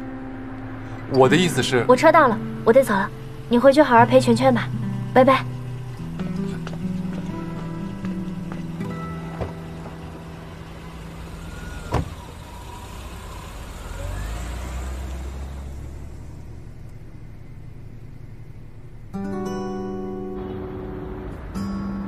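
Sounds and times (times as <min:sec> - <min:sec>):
background music with held notes: 0:00.0 - 0:11.9, 0:19.2 - 0:22.0
low car engine rumble: 0:00.0 - 0:22.0
car door knock: 0:06.2 - 0:10.2.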